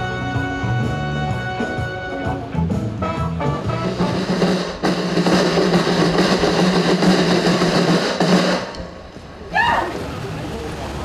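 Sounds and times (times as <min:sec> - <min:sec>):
backing music: 0:00.0 - 0:09.5
snare drum roll: 0:03.4 - 0:09.1.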